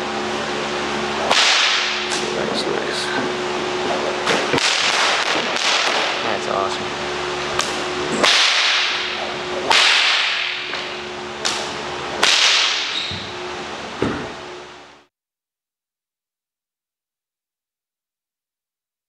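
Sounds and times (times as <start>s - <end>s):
low hum: 0.0s - 15.1s
whip swishing: 1.2s - 2.4s, 4.2s - 6.3s, 7.6s - 13.2s.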